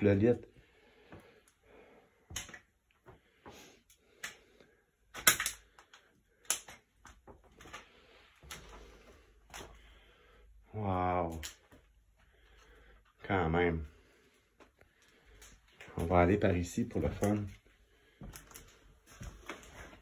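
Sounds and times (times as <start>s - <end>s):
shuffling steps: 14.2s - 20.0s.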